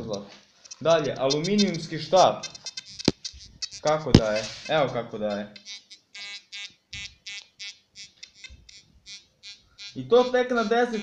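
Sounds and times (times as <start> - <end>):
metal detector buzzy beeps: 0.0 - 11.0.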